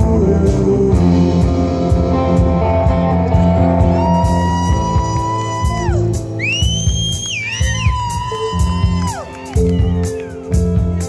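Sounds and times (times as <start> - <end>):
rock band playing: 0.0 - 11.0
sliding electric guitar notes: 0.0 - 11.0.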